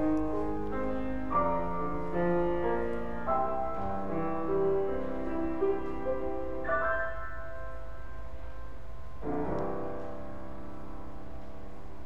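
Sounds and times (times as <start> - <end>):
low steady hum: 0.0 - 12.0
piano music: 0.0 - 12.0.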